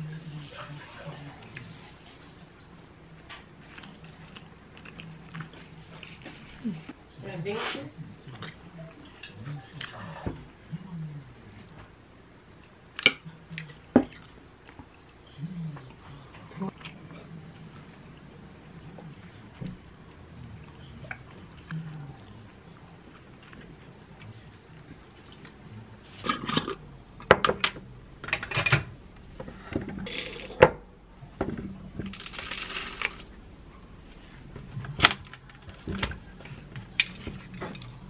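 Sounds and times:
coffee beans clattering into hopper: 0:32.1 - 0:33.2.

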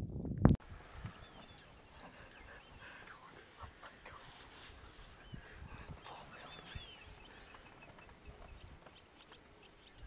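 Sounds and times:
high bird chirps: 0:06.1 - 0:10.0.

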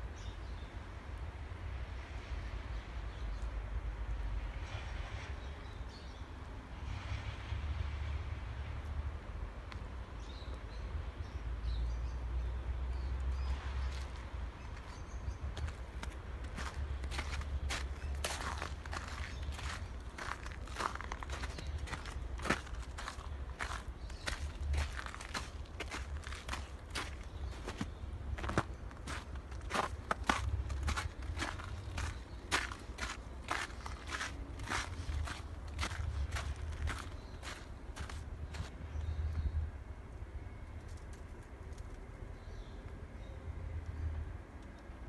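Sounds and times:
footsteps on snow: 0:13.8 - 0:38.8.

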